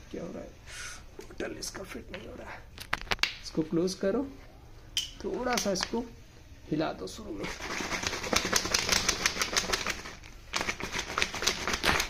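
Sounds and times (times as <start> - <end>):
plastic bottle shaken with liquid: 7.4 - 12.0.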